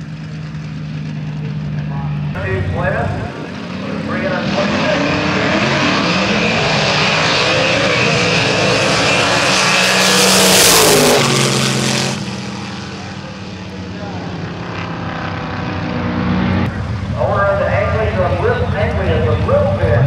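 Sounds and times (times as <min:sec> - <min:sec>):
drag car engines at full throttle: 0:00.0 - 0:20.0.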